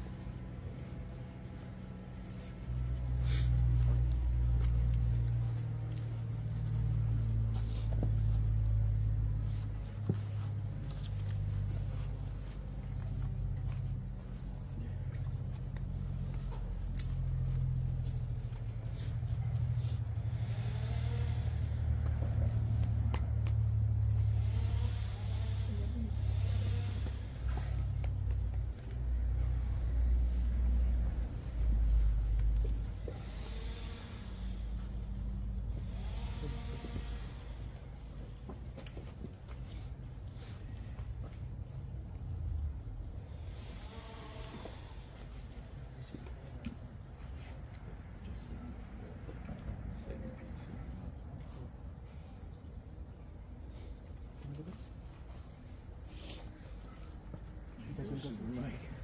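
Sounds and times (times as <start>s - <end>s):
faint murmured voices: 0.0s - 59.0s.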